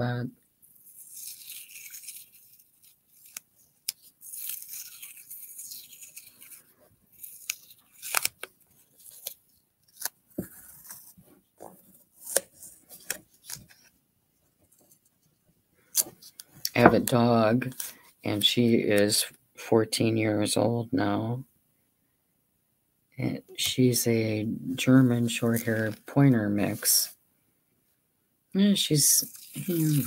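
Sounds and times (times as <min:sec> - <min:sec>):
masking tape peeling off roll: 0:00.9 - 0:11.2, 0:29.2 - 0:30.0
tape tearing: 0:00.9 - 0:11.2, 0:12.1 - 0:13.9, 0:29.2 - 0:30.0.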